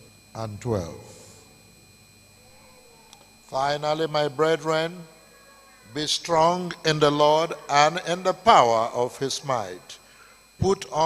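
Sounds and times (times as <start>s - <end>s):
low steady hiss: 0.0s - 2.4s, 3.1s - 11.0s
high-pitched electrical tones: 0.0s - 11.0s.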